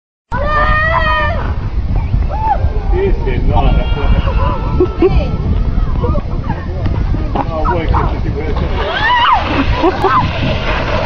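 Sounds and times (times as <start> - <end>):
steady low rumble: 0.3 - 11.0.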